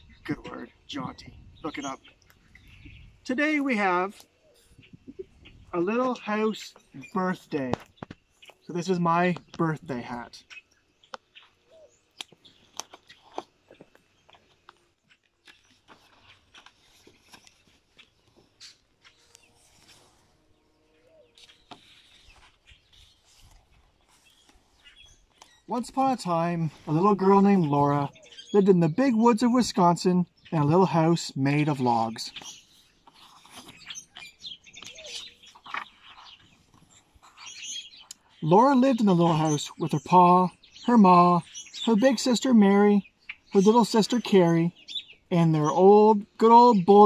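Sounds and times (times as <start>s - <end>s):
songbirds chirping: 0.0s - 47.0s
book pages turning: 15.5s - 20.2s, 21.4s - 24.7s, 33.0s - 37.4s.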